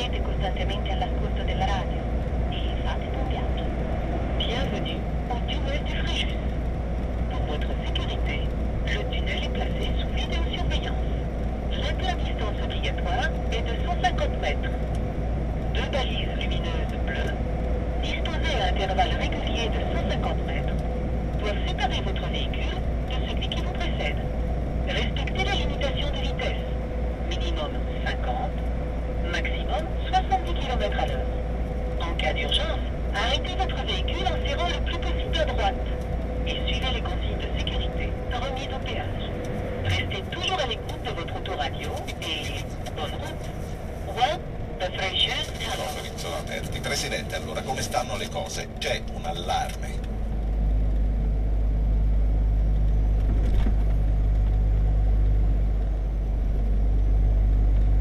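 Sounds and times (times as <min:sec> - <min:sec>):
radio talk: 0:00.0 - 0:50.2
truck engine and tyres droning: 0:00.0 - 0:58.0.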